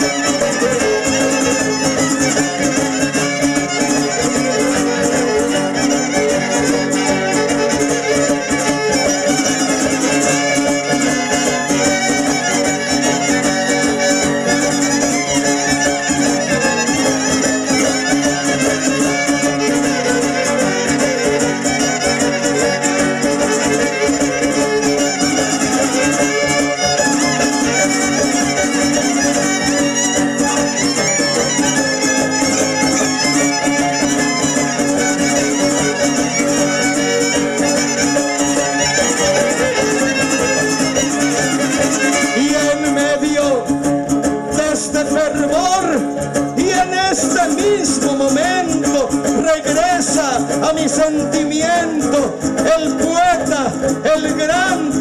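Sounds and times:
strummed guitar: 0.0 - 55.0
violins playing dance tune: 0.0 - 55.0.

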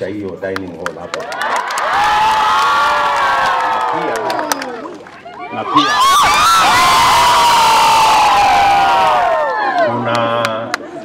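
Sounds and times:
crowd cheering and shouting: 1.2 - 10.6.

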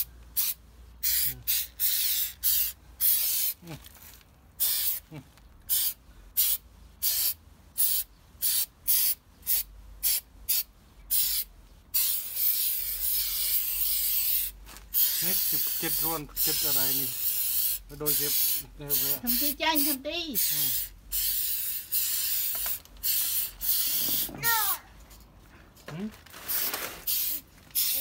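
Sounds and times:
aerosol spray can hissing: 0.0 - 3.6, 4.6 - 5.0, 5.7 - 24.7, 26.6 - 28.0.

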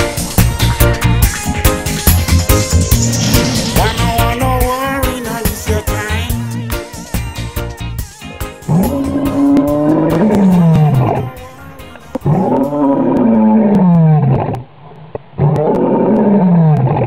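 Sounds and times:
background music: 0.0 - 13.5
lion roaring: 2.9 - 4.4, 8.7 - 11.3, 12.1 - 14.7, 15.4 - 17.0.

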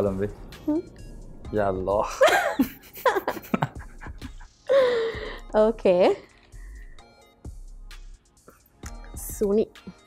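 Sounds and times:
man laughing breathily: 2.2 - 5.4.

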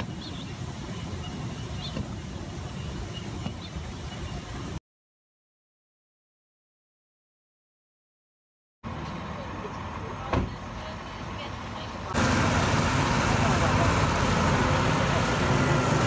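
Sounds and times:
street ambience: 8.8 - 16.0
bus diesel engine rumbling: 8.9 - 16.0.

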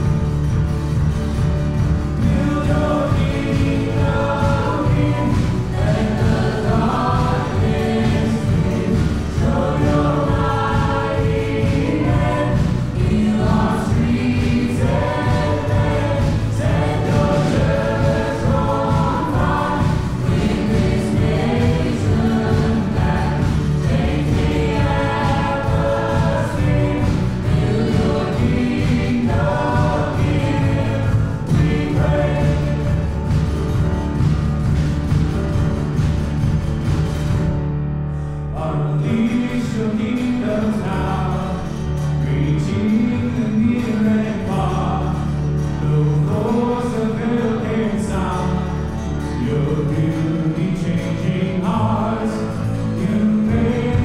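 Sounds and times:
people singing together: 0.0 - 37.4, 38.5 - 54.0
acoustic guitar: 0.0 - 54.0
bass guitar: 0.0 - 54.0
drums: 0.0 - 54.0
piano: 0.0 - 54.0.

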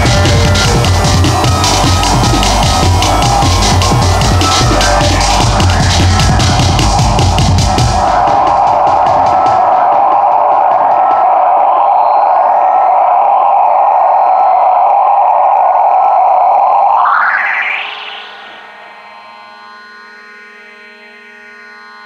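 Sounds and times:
distorted synthesizer drone: 0.0 - 22.0.

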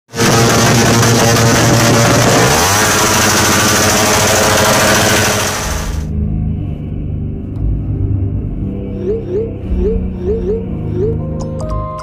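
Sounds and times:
motorcycle engine revving: 0.1 - 6.1.

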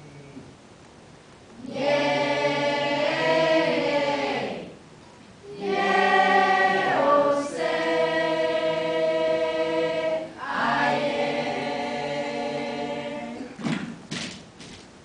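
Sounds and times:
children and woman singing: 5.5 - 13.6.

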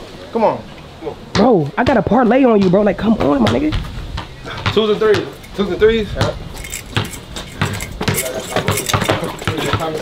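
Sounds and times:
basketball bouncing on hard court: 1.3 - 5.4, 6.2 - 10.0.

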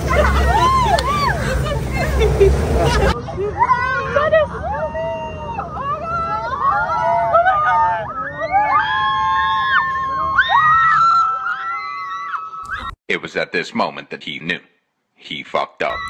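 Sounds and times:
high voices screaming and wailing: 0.0 - 13.0.

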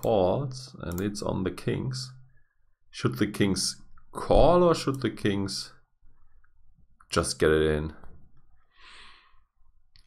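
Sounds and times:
man breathing out softly: 8.7 - 9.5.

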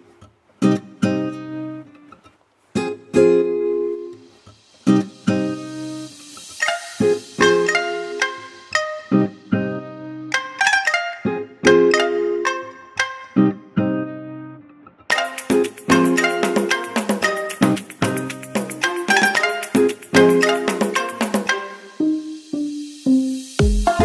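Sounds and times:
strummed acoustic guitar: 0.0 - 14.5, 15.1 - 22.6
brief hissing swell: 4.4 - 8.7.

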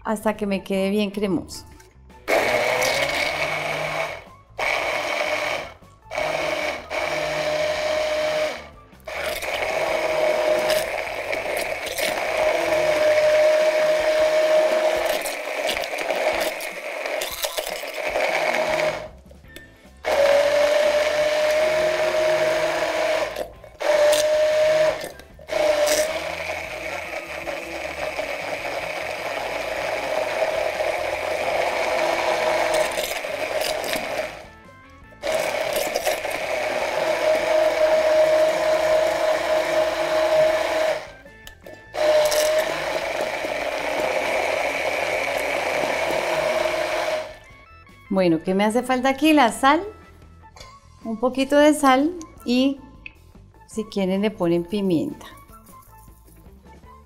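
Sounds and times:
immersion blender motor whine: 2.3 - 19.1, 20.0 - 34.6, 35.2 - 41.2, 41.8 - 47.5.

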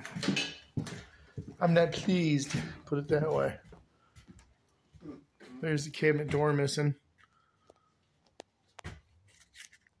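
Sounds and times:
rustling: 8.5 - 10.0.

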